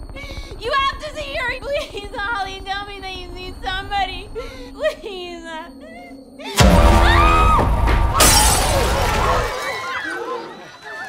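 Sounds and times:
low rumble: 6.6 - 9.5
glass shattering crash: 6.6 - 9.9.

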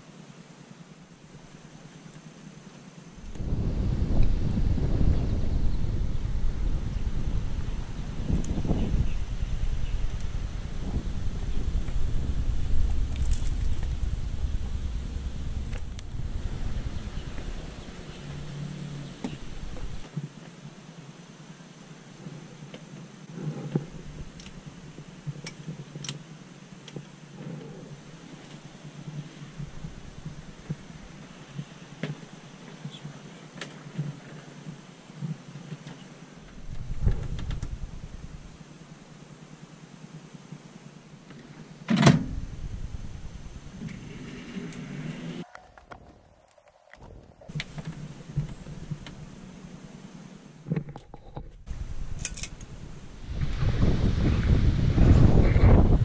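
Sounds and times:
wind rumble on microphone: 3.2 - 20.1, 23.4 - 25.4, 27.4 - 32.4, 36.4 - 38.6, 42.1 - 46.4, 50.8 - 56.0.

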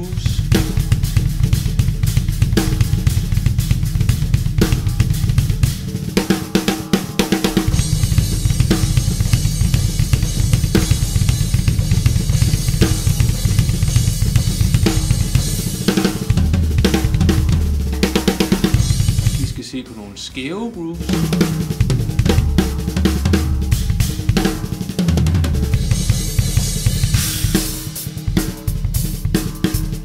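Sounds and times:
bass drum: 0.0 - 30.0
cymbals: 0.0 - 30.0
snare drum backbeat: 0.0 - 30.0.

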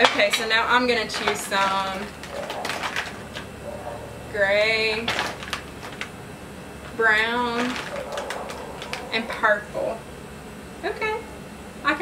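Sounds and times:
bird cooing: 2.2 - 4.3, 7.5 - 10.1
plastic markers clicking in bowl: 7.6 - 9.3.

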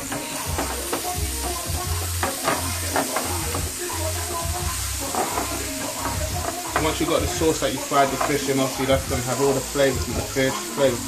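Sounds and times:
wooden spatula scraping pan: 0.0 - 3.8, 5.0 - 9.2
onions sizzling in oil: 0.0 - 11.0.

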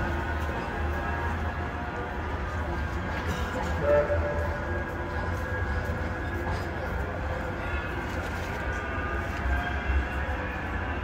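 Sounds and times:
city street noise: 0.0 - 11.0
tram low rumble: 0.0 - 11.0.

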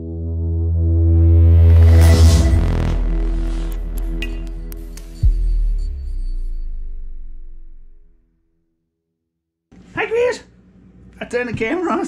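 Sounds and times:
deep electronic hum: 0.0 - 8.5
rushing noise swell: 0.6 - 6.9.

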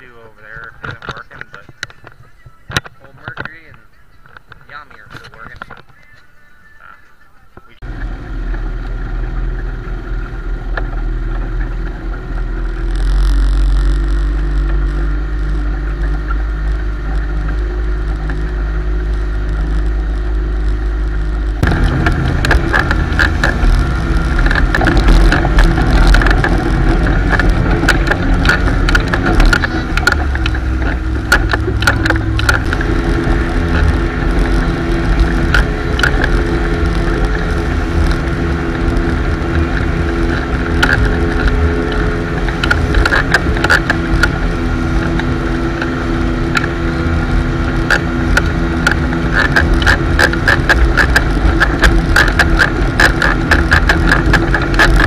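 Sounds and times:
motorboat engine running: 0.0 - 55.0
wind on microphone: 7.8 - 55.0
water rushing in wake: 7.9 - 55.0.

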